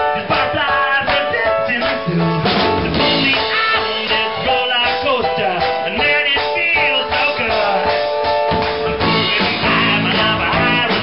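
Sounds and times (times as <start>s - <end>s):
drum kit beat: 0.0s - 11.0s
keyboard playing a song: 0.0s - 11.0s.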